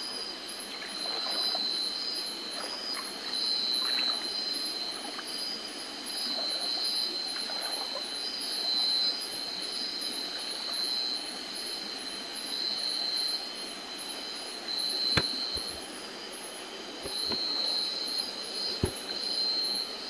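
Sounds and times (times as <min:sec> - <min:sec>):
night insects chirring: 0:00.0 - 0:20.0
stream water splashing: 0:00.7 - 0:05.4, 0:15.0 - 0:20.0
feet knocking on stones: 0:15.2 - 0:15.8, 0:17.0 - 0:17.6, 0:18.8 - 0:19.1.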